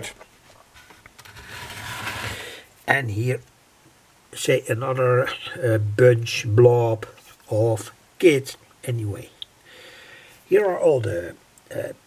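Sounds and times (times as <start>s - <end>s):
metal cone scraping on wood: 0.8s - 2.5s.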